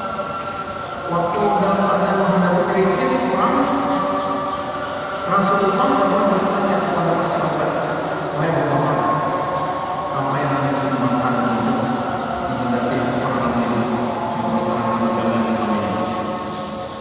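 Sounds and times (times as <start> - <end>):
man chanting: 1.0 - 16.8.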